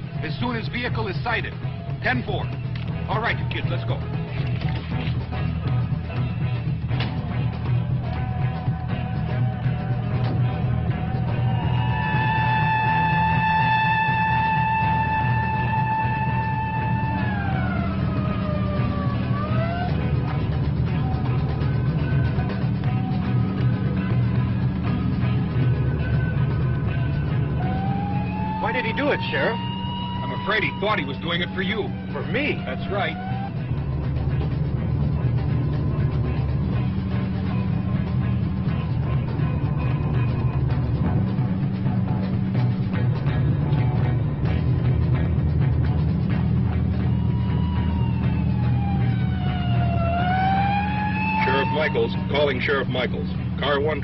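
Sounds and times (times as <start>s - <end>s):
dramatic film music: 0.0s - 54.0s
low car engine drone: 0.0s - 54.0s
police siren wailing: 7.8s - 38.4s, 46.3s - 53.6s
high rising tone: 11.0s - 23.7s, 26.1s - 34.3s, 46.7s - 52.6s.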